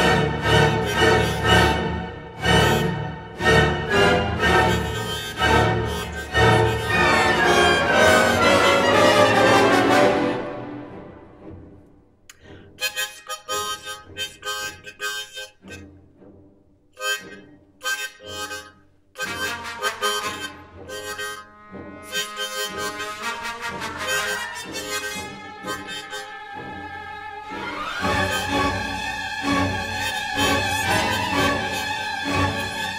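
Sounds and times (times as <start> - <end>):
harmonica chords and phrases: 0.0 - 9.5, 12.3 - 16.1, 16.9 - 32.9.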